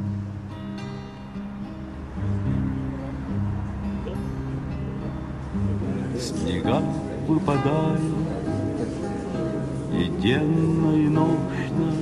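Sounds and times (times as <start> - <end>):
strummed acoustic guitar: 0.0 - 12.0
person singing: 6.2 - 9.1, 9.8 - 12.0.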